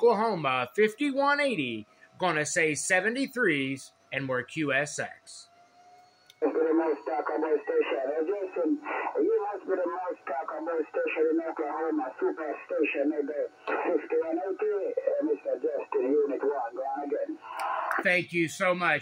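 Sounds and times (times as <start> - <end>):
narrow-band radio speech: 6.4 - 19.0.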